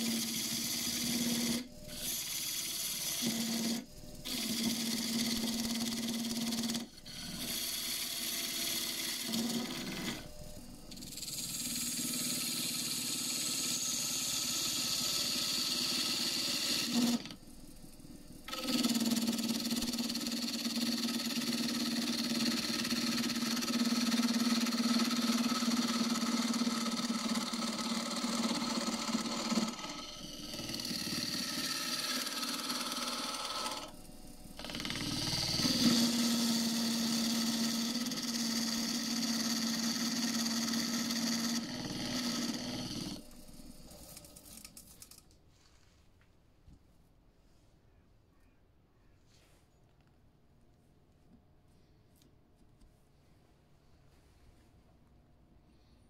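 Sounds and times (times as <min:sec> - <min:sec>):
wood lathe humming: 0:00.0 - 0:44.2.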